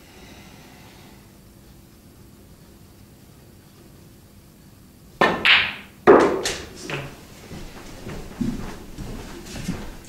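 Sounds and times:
cue striking ball: 0:05.2 - 0:07.2
snooker balls clicking: 0:05.2 - 0:07.9.

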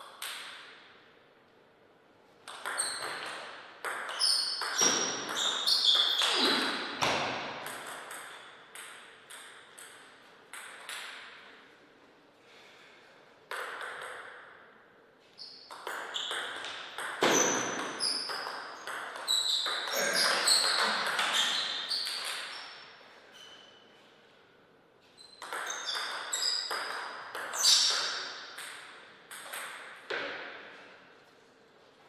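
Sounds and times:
table tennis ball hits: 0:00.1 - 0:00.9, 0:02.4 - 0:11.6, 0:13.5 - 0:14.8, 0:15.7 - 0:22.8, 0:25.3 - 0:30.8.

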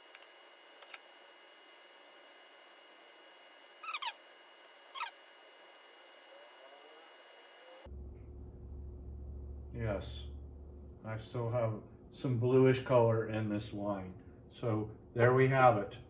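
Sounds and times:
deeper hum: 0:00.0 - 0:15.2
faint steady hum: 0:00.0 - 0:16.0
glassware squeaks: 0:03.8 - 0:04.2, 0:05.0 - 0:05.2.

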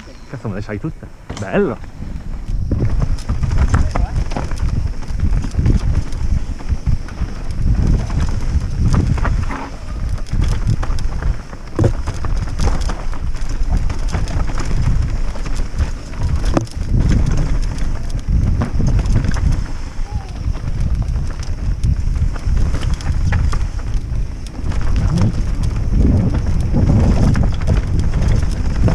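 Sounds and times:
bike knocking and rattling: 0:00.0 - 0:28.9
bike tyres rolling over rock: 0:00.0 - 0:28.9
wind rumble on microphone: 0:00.0 - 0:28.9.

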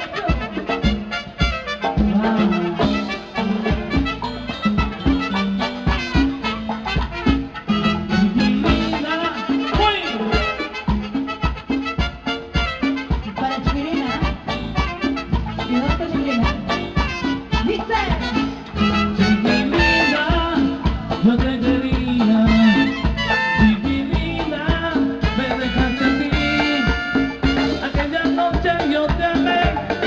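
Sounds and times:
salsa dance band playing: 0:00.0 - 0:30.0.

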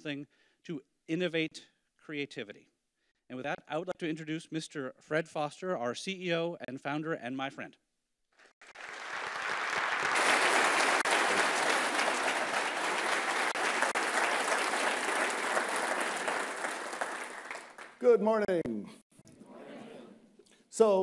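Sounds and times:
large audience applauding: 0:08.6 - 0:18.2.

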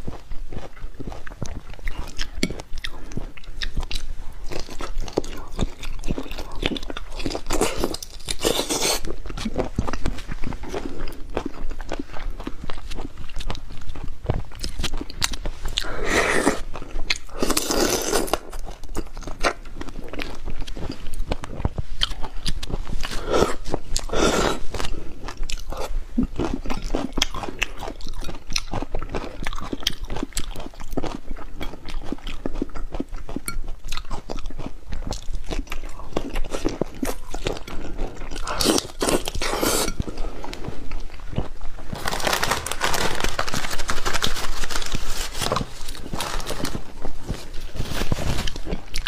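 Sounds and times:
wet chewing and smacking: 0:00.0 - 0:42.0, 0:48.4 - 0:49.0
slurping: 0:15.7 - 0:16.7, 0:37.9 - 0:40.8.

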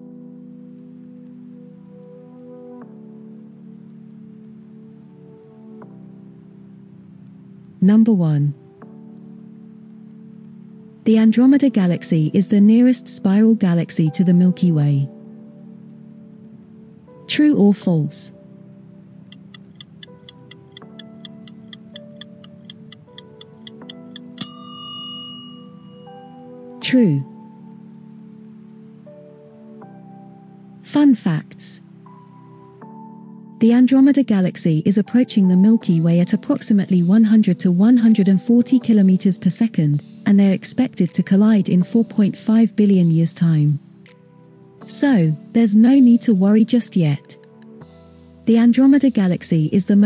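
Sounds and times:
faint pattering hiss: 0:00.0 - 0:24.8, 0:26.0 - 0:33.8
soft sustained chords music: 0:00.0 - 0:50.0
countdown timer ticking: 0:19.2 - 0:24.8
bright chime: 0:24.4 - 0:26.5.

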